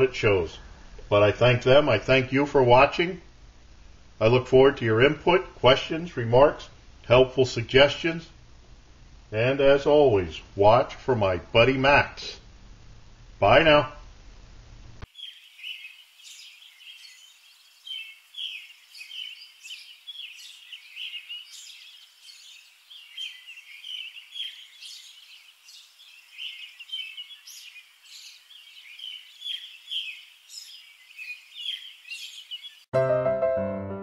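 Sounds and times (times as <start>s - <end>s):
small birds chirping: 15.0s - 32.9s.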